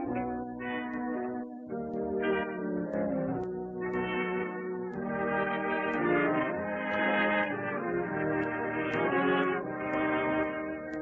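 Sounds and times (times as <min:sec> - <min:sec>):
brass dance band music: 0:00.0 - 0:11.0.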